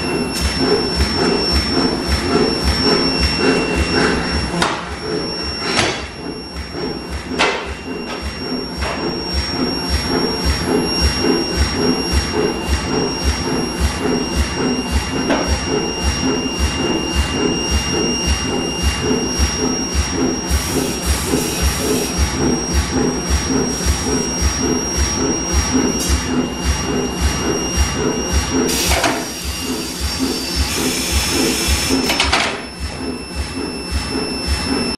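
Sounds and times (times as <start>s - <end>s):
induction heater high whine: 0.0s - 34.9s.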